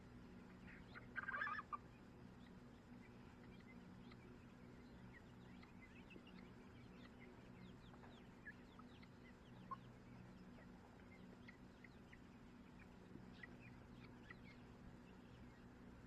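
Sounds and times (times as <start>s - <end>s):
chicks peeping and chirping: 0.0s - 16.0s
steady low hum: 0.0s - 16.0s.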